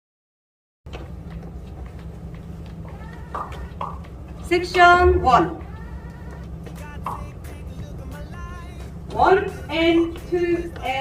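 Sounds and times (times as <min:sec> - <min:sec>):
low steady hum: 0:00.9 - 0:11.0.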